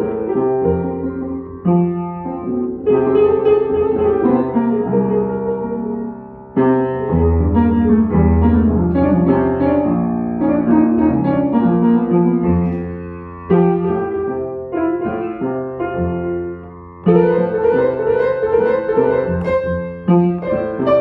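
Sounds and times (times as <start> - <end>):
upright piano chords: 0.0 - 21.0.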